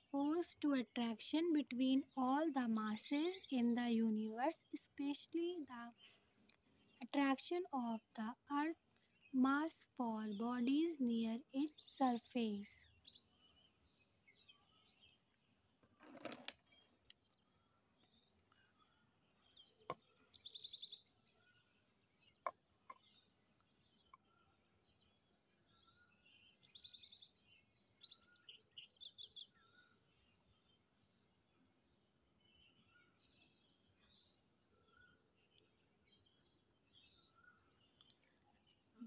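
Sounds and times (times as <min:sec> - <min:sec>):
faint birds chirping: 0:00.0 - 0:39.0.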